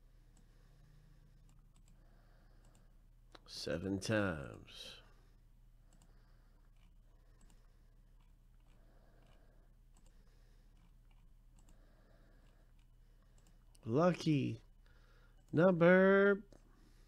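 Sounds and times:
computer mouse clicks: 0:01.4 - 0:02.0, 0:02.6 - 0:03.4, 0:05.8 - 0:13.8.

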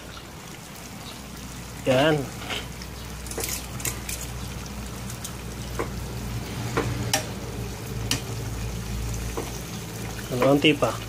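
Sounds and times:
deep-frying sizzle: 0:00.0 - 0:11.0.

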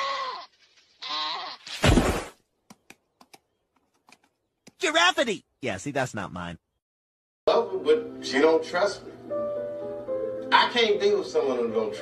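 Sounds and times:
cartoon giraffe bleating call: 0:00.0 - 0:01.6.

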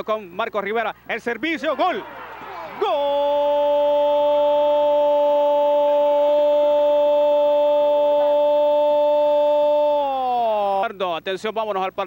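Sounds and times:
commentator's long held goal call: 0:01.6 - 0:10.8.

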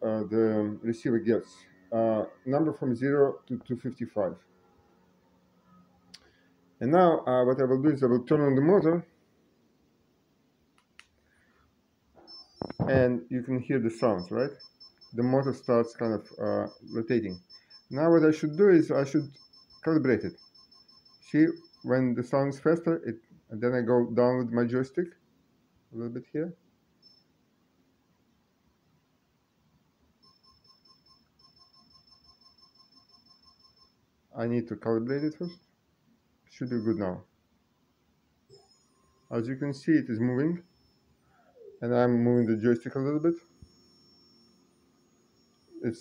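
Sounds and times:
high-pitched motor beep: 0:12.2 - 0:13.0, 0:13.9 - 0:21.9, 0:36.6 - 0:37.2, 0:38.5 - 0:46.0
steady high tone: 0:12.2 - 0:20.4, 0:36.6 - 0:37.2, 0:38.5 - 0:46.0.

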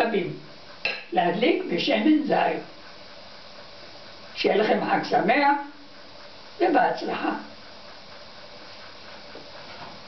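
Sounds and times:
low background hiss: 0:00.0 - 0:09.8.

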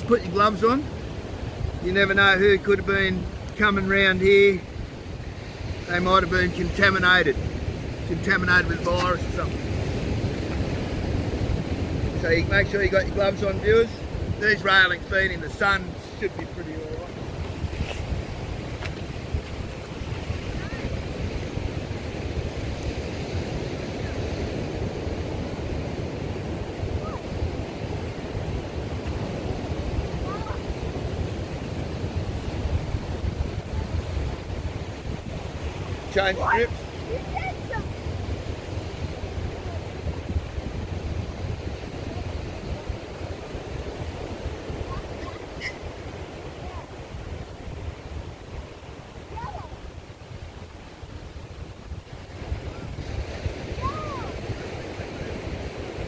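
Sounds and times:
ocean surf: 0:00.0 - 0:56.0
wind buffeting microphone: 0:00.0 - 0:56.0.

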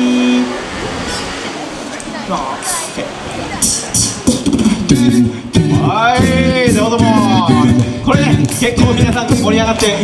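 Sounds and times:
steady held note: 0:00.0 - 0:01.8
faint voices: 0:00.0 - 0:10.0.

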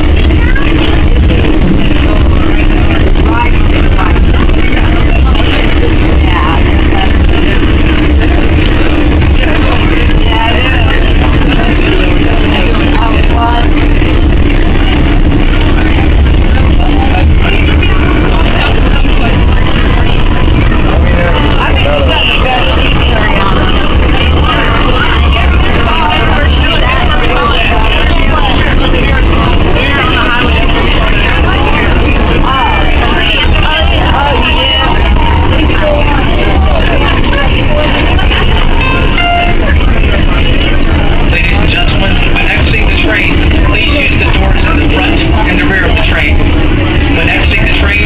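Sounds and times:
people talking indistinctly: 0:00.0 - 0:48.0
train rumbling on track: 0:00.0 - 0:48.0.

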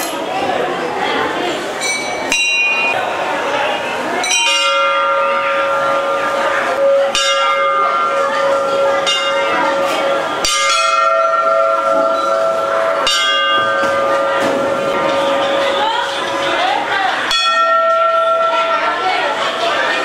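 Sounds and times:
murmur of crowd: 0:00.0 - 0:20.0
temple bells ringing: 0:01.8 - 0:20.0.

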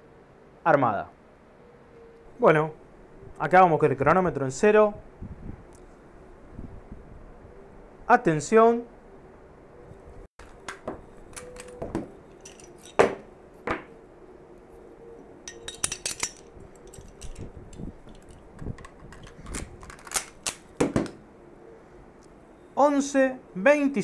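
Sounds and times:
pistol parts clicking and clacking: 0:10.4 - 0:13.2, 0:15.5 - 0:21.2.

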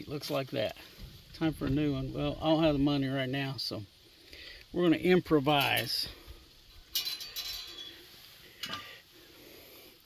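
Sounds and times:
steel plate clattering: 0:06.8 - 0:08.0, 0:08.6 - 0:09.0.

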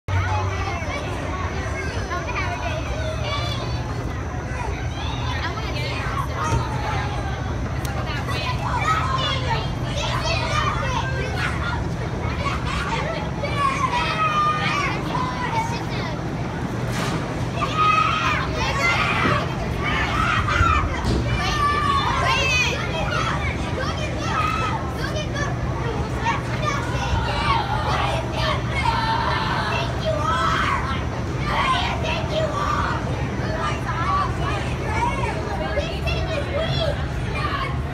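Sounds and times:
blowers droning: 0:00.1 - 0:37.9
children yelling and laughing: 0:00.1 - 0:37.9.

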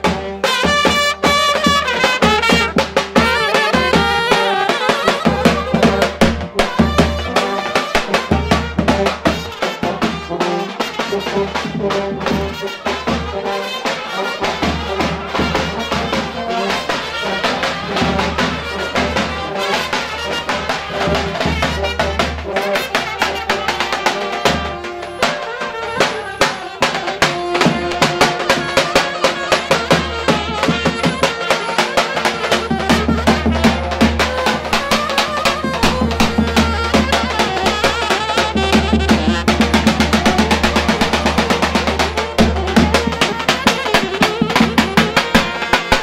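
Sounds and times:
bass drum beat: 0:00.0 - 0:10.3, 0:32.4 - 0:46.0
saxophone: 0:00.0 - 0:46.0
trumpet: 0:00.0 - 0:46.0.

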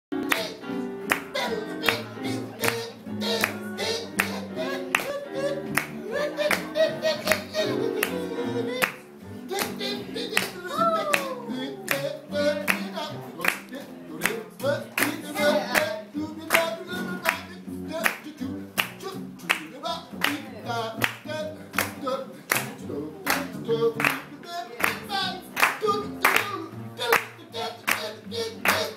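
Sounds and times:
upright bass walking line: 0:00.1 - 0:28.9
hand claps: 0:00.2 - 0:02.0, 0:02.6 - 0:02.8, 0:03.4 - 0:03.6, 0:04.2 - 0:08.2, 0:08.8 - 0:09.0, 0:09.6 - 0:09.8, 0:10.4 - 0:12.0, 0:12.7 - 0:15.2, 0:16.5 - 0:17.4, 0:18.0 - 0:20.4, 0:21.0 - 0:28.9
person scat singing: 0:00.2 - 0:13.7, 0:14.6 - 0:18.0.

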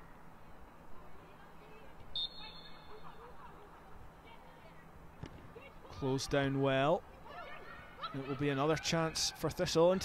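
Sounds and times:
referee's whistle: 0:02.2 - 0:02.9.

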